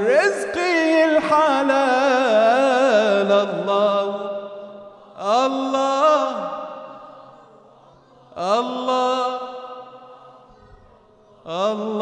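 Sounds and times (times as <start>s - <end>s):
man singing unaccompanied: 0.0s - 7.2s, 8.3s - 10.4s, 11.3s - 12.0s.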